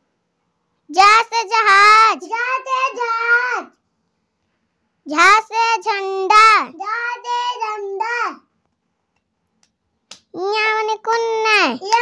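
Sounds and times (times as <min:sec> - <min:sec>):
child chanting sing-song: 0:02.1 - 0:03.8.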